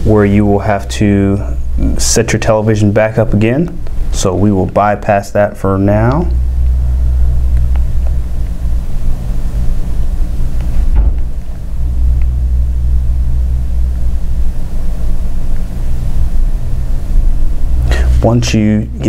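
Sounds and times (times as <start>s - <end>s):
low-pitched hum: 0.0s - 19.0s.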